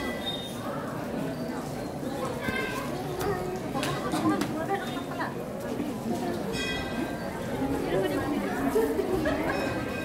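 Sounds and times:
crowd of adults and children talking: 0.0 - 10.0.

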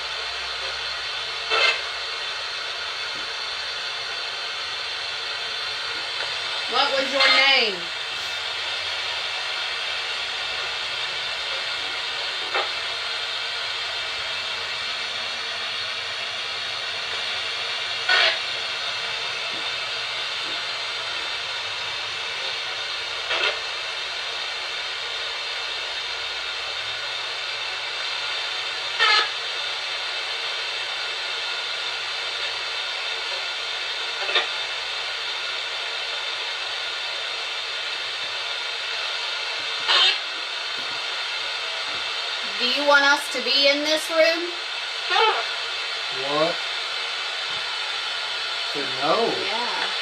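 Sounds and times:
radio static hiss: 5.8 - 8.6, 18.0 - 18.4.

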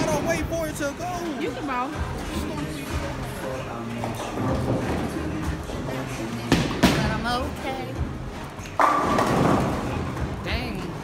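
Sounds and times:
bowling ball crashing into pins: 8.8 - 10.2.

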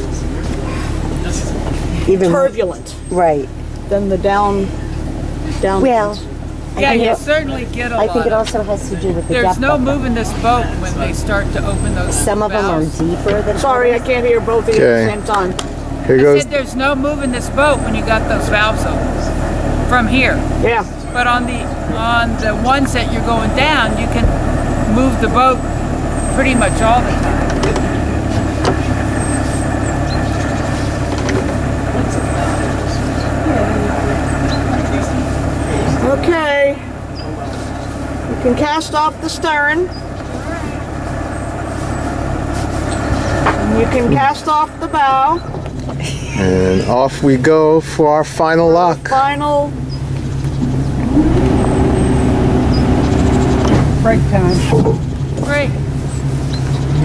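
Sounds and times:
boat engine idling: 0.0 - 57.0
constant low hum: 0.0 - 57.0.

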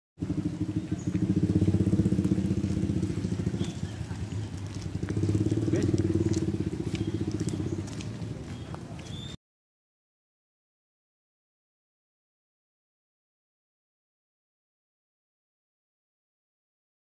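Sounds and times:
small engine running: 0.2 - 9.2.

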